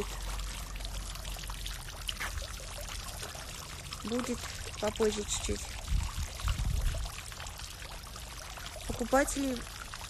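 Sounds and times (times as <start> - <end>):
running trickling water: 0.0 - 10.0.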